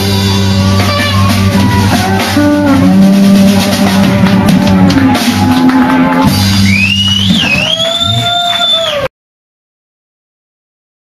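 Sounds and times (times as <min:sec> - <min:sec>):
electric slide guitar: 0:00.0 - 0:06.9
band low notes: 0:00.0 - 0:08.4.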